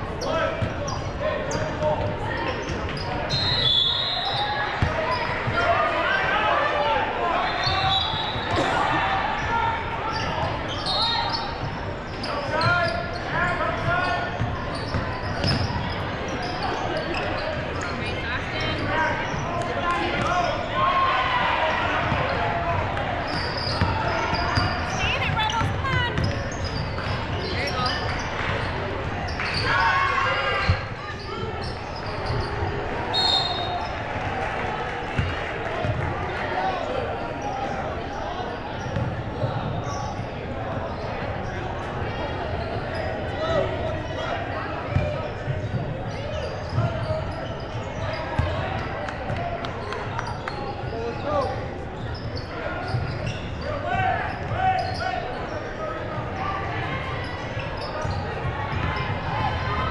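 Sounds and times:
chatter of players and spectators: 0:00.0 - 0:59.9.

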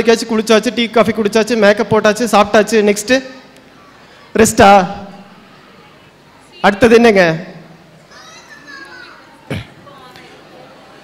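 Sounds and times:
background chatter of children: 0:03.4 - 0:06.9, 0:07.5 - 0:11.0.

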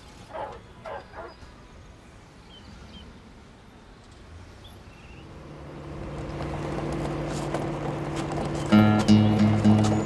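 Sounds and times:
low street background: 0:00.0 - 0:10.0
dog barking: 0:00.3 - 0:01.4.

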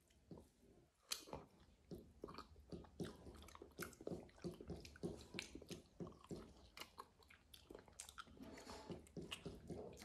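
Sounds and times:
person chewing fruit: 0:00.0 - 0:10.0.

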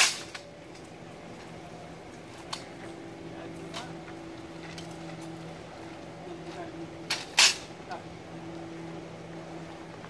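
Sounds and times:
boat engine droning: 0:07.7 - 0:10.0.

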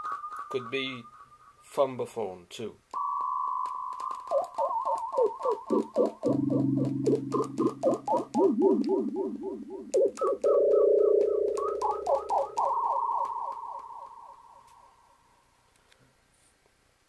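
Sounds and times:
synthesizer siren-like tones: 0:03.7 - 0:14.6.

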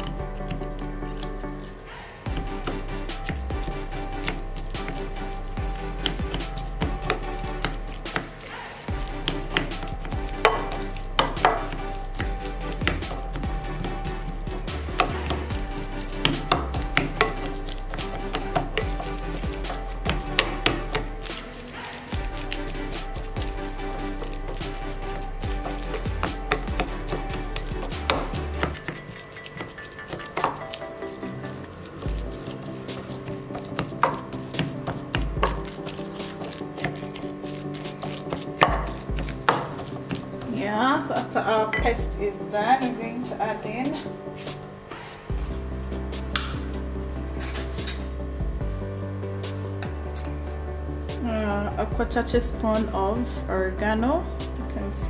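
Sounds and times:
background music with chords: 0:00.0 - 0:55.0
potatoes squashing: 0:00.0 - 0:55.0.

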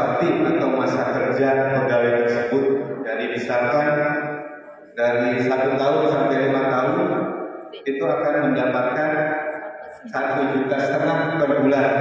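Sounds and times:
man speaking over public address: 0:00.0 - 0:04.2, 0:05.0 - 0:07.2, 0:07.8 - 0:12.0.

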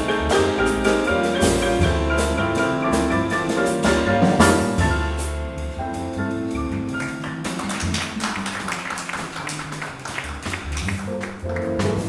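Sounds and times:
jazz trio playing: 0:00.0 - 0:12.0.

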